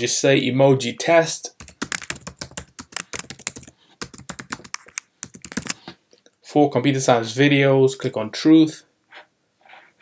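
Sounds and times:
typing on a computer keyboard: 1.6s - 5.8s.

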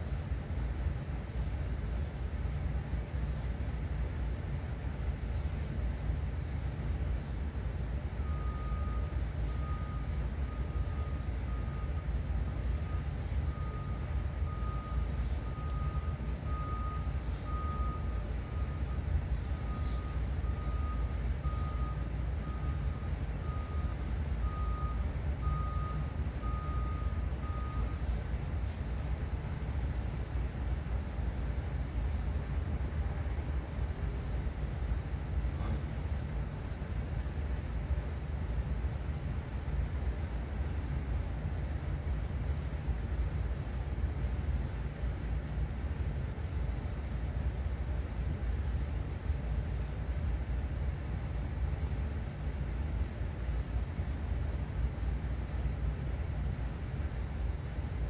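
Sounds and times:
steady low rumble: 0.0s - 58.0s.

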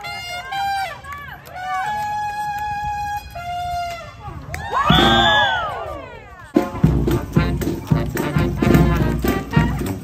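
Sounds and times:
crowd whooping and cheering: 4.5s - 6.4s
parade music: 6.6s - 10.0s.

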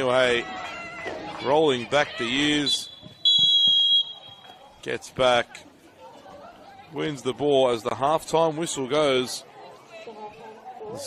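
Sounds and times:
referee's whistle long blast: 2.6s - 4.4s.

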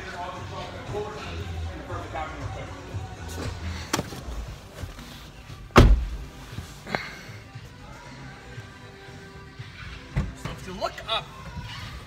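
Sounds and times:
faint background music: 0.0s - 12.0s
car door shutting: 5.6s - 6.3s.

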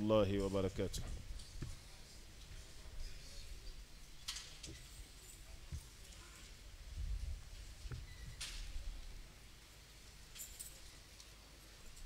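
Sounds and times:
light clinks: 10.3s - 12.0s.

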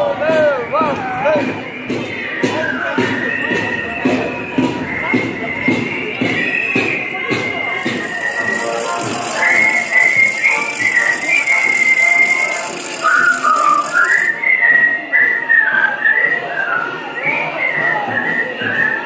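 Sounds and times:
marching crowd: 0.0s - 19.0s
person whistling a tune: 0.3s - 19.0s.

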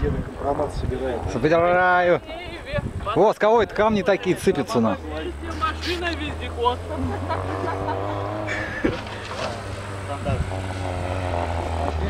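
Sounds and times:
people talking: 0.0s - 12.0s
distant car engine droning: 4.2s - 12.0s.

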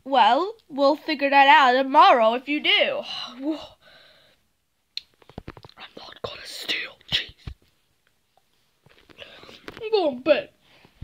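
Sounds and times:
person whispering breathily: 5.8s - 7.4s.

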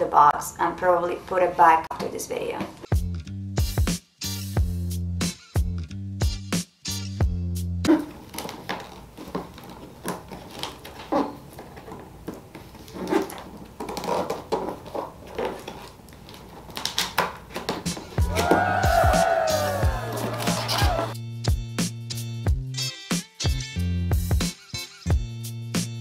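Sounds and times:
music: 2.4s - 8.6s, 17.6s - 26.0s
cardboard scrapes and rustles: 7.9s - 16.8s
cheering sound effect: 18.2s - 21.2s.

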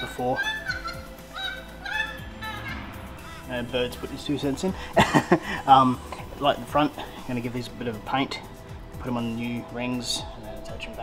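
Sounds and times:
bird calling: 0.0s - 4.5s
background music: 0.0s - 11.0s.

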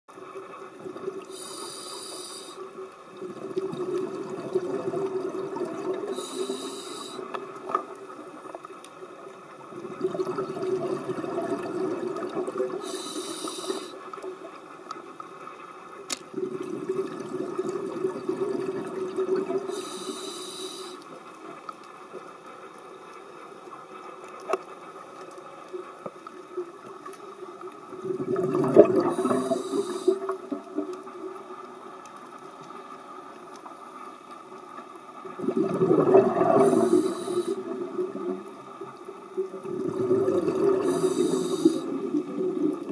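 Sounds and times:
regulator inhalation hiss: 1.3s - 2.8s, 6.1s - 7.4s, 12.8s - 14.1s, 19.6s - 21.1s, 29.1s - 30.3s, 36.6s - 37.7s, 40.7s - 42.0s
exhaled bubbles rushing: 3.2s - 6.6s, 9.7s - 13.0s, 16.3s - 19.9s, 27.9s - 31.4s, 35.3s - 42.9s.

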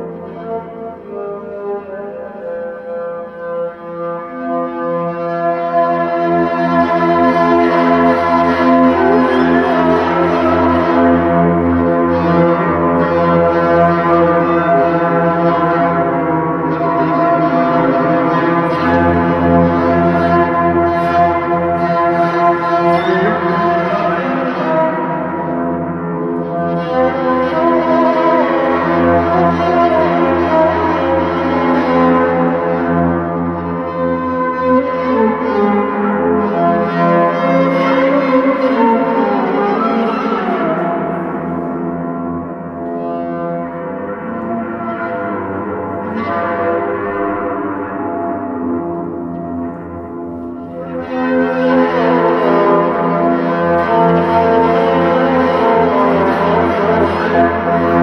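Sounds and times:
bowed spring drone instrument: 0.0s - 58.0s.

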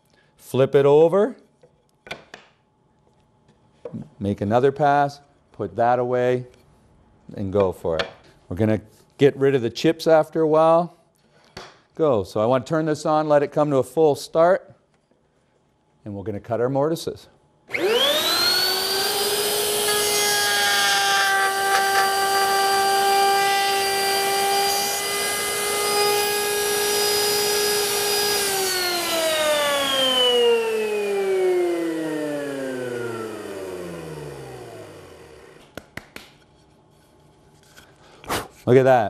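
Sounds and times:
router motor whining: 17.7s - 35.6s.

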